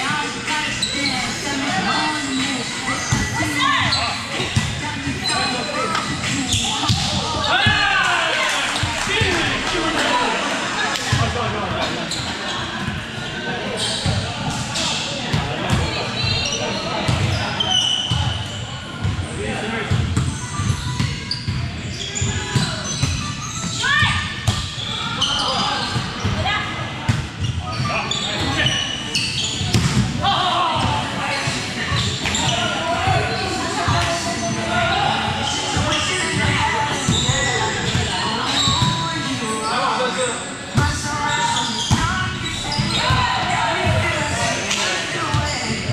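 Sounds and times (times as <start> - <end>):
players calling: 0.0 - 12.7.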